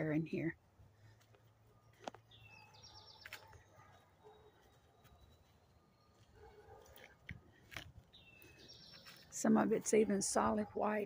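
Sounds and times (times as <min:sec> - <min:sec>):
faint bird song: 0:00.0 - 0:10.6.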